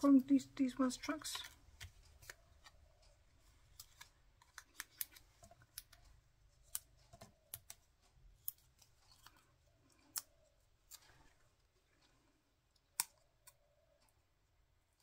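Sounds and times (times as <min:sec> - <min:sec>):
paper and card clicks and rustles: 0:01.0 - 0:10.2.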